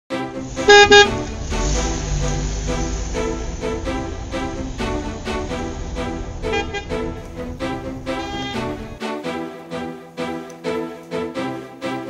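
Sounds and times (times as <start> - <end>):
intro music: 0.1 - 12.0
short loud horn toots: 0.6 - 3.4, 6.5 - 7.0, 8.1 - 8.9.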